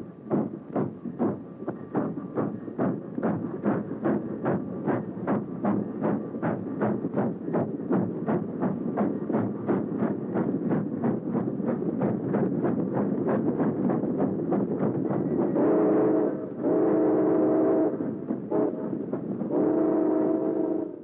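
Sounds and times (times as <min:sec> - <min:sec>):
steam locomotive chuffing: 0:00.0 - 0:21.0.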